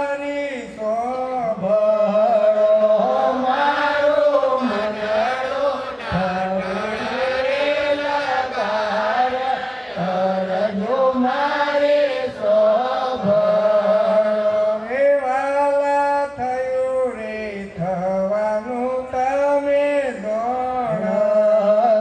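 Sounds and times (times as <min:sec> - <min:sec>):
man chanting: 0:00.0 - 0:09.4, 0:12.3 - 0:22.0.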